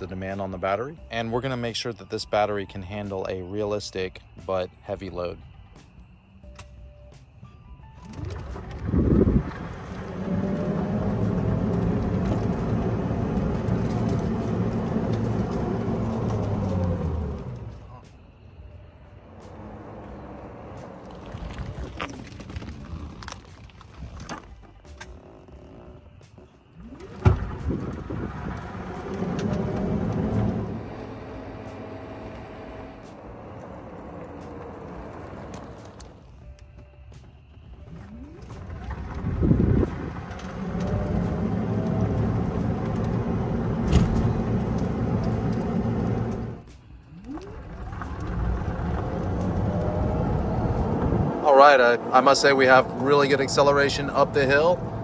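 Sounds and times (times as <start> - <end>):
road noise: 0.0 - 55.0
electric motor whining: 26.8 - 36.2, 38.4 - 46.6.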